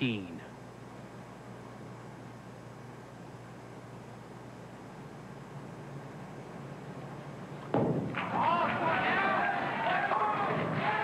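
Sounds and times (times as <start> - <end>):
bowling ball thud on lane: 7.7 - 8.4
raised voices calling out: 8.3 - 11.0.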